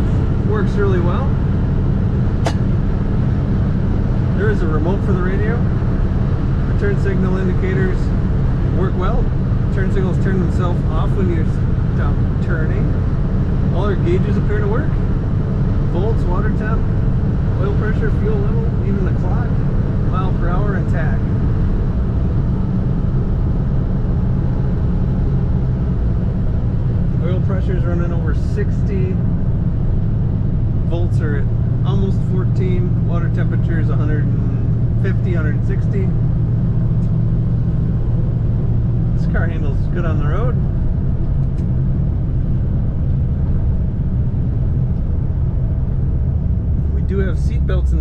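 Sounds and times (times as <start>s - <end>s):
car engine and road drone: 0.0s - 48.0s.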